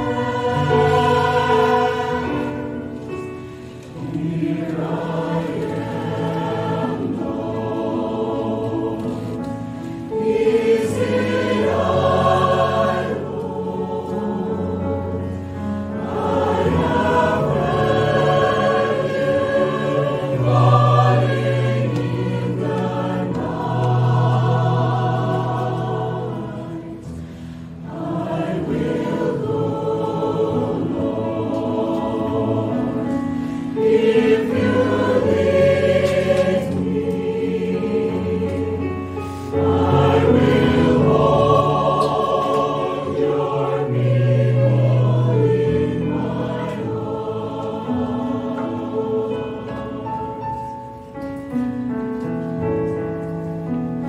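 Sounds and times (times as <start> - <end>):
mixed choir singing: 0.0 - 52.3.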